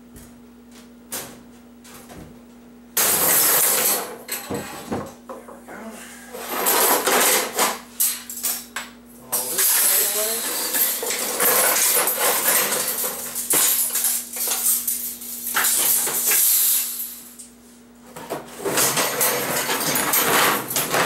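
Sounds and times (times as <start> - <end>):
clattering and rustling of objects: 3.0 - 5.7, 6.3 - 8.7, 9.3 - 17.1, 18.0 - 21.0.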